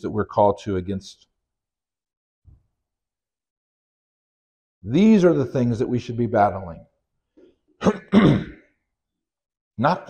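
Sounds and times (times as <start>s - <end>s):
man clearing his throat: 7.8s - 8.7s.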